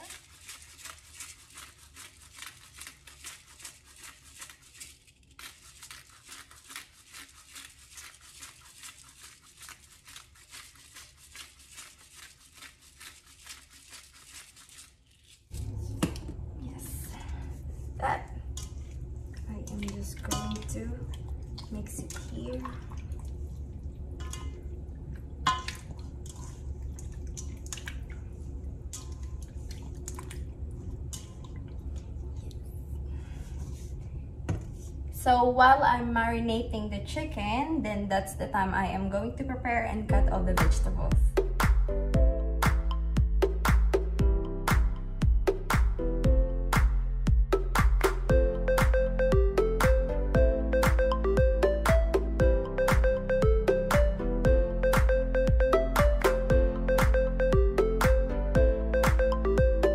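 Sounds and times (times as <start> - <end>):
pepper mill grinding: 0.0 - 15.6
wet squishing of meat mixed by hand: 0.0 - 15.8, 17.4 - 34.0
steady low hum: 15.5 - 59.9.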